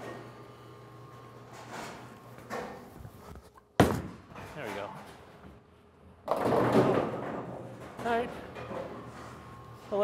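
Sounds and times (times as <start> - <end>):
bowling ball hitting pins: 6.2 - 8.1.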